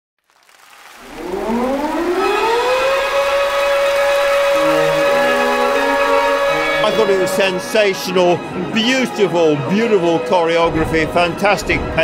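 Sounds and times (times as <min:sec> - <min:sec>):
low sustained musical notes: 0:00.9 - 0:10.6
air-raid siren wailing: 0:01.0 - 0:10.2.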